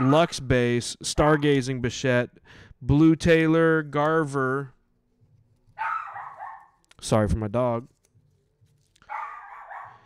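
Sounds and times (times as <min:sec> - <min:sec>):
dog barking: 0:00.0 - 0:00.2, 0:05.8 - 0:06.8, 0:09.1 - 0:10.0.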